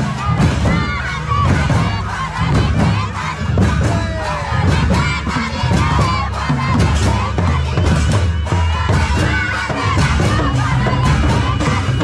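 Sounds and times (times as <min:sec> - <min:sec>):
crowd singing and calling out: 0:00.0 - 0:12.0
hand drum beats: 0:00.0 - 0:12.0.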